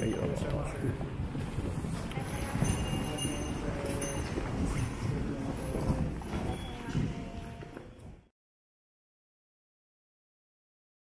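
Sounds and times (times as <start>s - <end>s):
murmur of voices: 0.0s - 8.0s
footsteps on hard floor: 4.2s - 8.2s.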